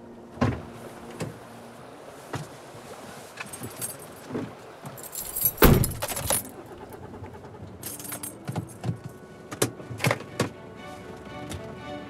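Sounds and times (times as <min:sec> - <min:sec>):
keys jingling: 0:04.9 - 0:06.5, 0:07.8 - 0:08.8
car door shutting: 0:05.5 - 0:06.1.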